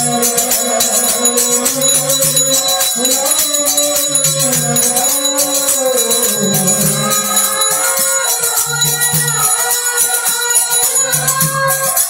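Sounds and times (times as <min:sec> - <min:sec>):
harmonium holding notes: 0:00.0 - 0:12.0
jingling hand percussion: 0:00.0 - 0:12.0.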